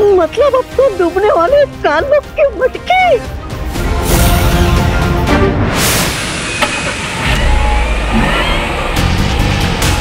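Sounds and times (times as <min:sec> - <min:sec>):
rising whine: 0:06.1 - 0:10.0
car engine revving: 0:07.0 - 0:10.0.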